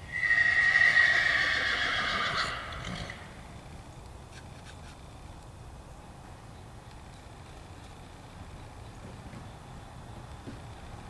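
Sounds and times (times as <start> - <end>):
horse whinnying: 0.1 - 3.4.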